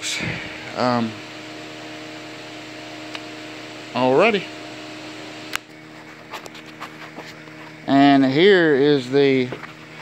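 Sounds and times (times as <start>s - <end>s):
steady machine hum: 0.0s - 10.0s.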